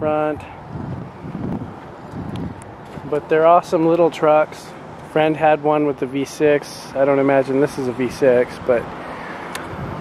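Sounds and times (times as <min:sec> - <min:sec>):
wind rumbling on microphone: 0:00.0 - 0:03.6, 0:08.0 - 0:10.0.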